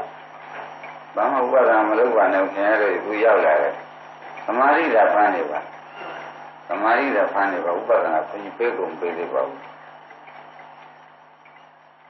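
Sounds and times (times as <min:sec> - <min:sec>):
tape hiss: 0:00.0 - 0:12.0.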